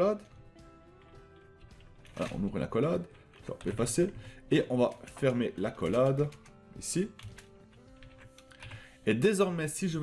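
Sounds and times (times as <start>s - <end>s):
keyboard typing: 0.9s - 8.9s.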